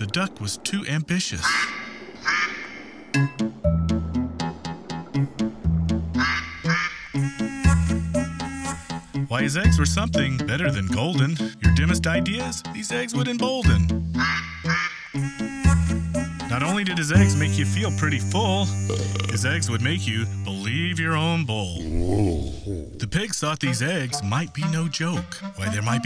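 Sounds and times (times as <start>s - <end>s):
duck quacking: 1.4s - 2.8s, 6.2s - 8.9s, 14.2s - 20.6s
background music with bass line: 3.2s - 21.2s
music with drums and bass: 9.5s - 11.1s, 17.2s - 20.4s.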